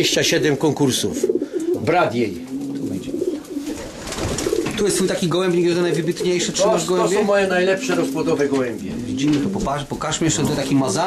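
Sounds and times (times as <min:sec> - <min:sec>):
pigeons cooing: 0:00.0 - 0:10.8.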